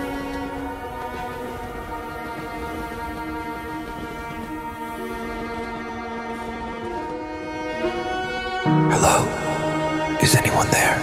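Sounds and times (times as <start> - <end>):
orchestral bowed strings: 0.0 - 11.0.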